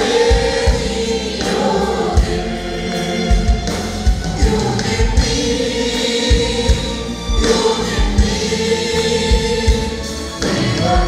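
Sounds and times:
band playing: 0.0s - 11.0s
group singing worship song: 0.0s - 11.0s
low drum beats: 0.0s - 11.0s.

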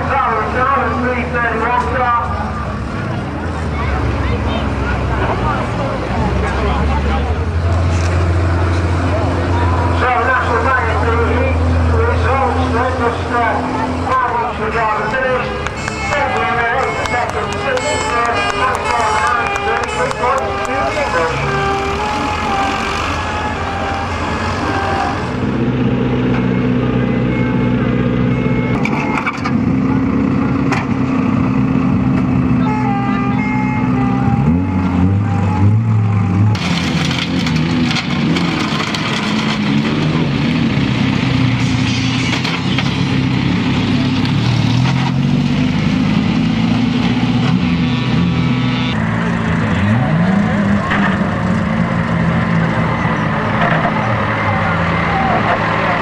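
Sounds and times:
tractor diesel engine revving: 0.0s - 56.0s
vehicle engines running: 0.0s - 56.0s.

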